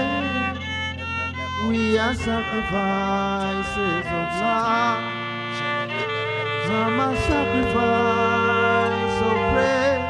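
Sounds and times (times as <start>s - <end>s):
person singing gliding notes: 0.0s - 10.0s
string-like chords: 0.0s - 10.0s.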